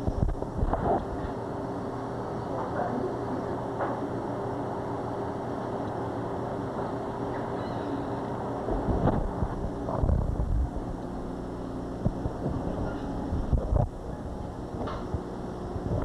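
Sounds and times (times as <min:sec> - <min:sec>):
low hum: 0:00.0 - 0:16.0
microphone handling bumps: 0:08.7 - 0:10.9, 0:12.0 - 0:14.0.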